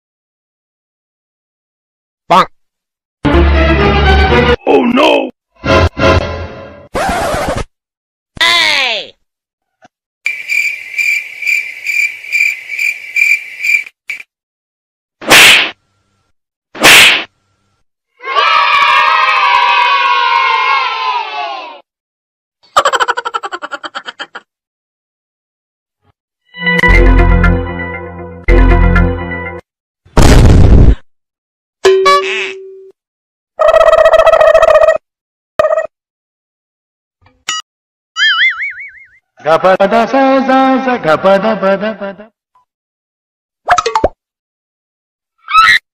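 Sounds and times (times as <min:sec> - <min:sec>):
group of voices yelling: 0:18.2 - 0:21.8
loud sharp hits: 0:30.2 - 0:31.0.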